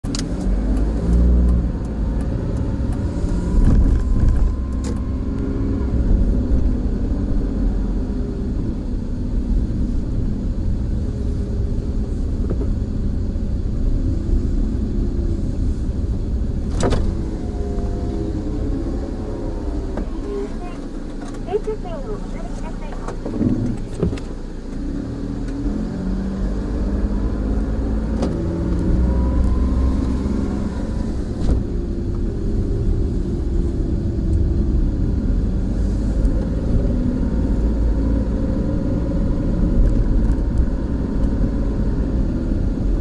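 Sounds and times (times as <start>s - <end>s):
car engine and road noise: 0.0s - 43.0s.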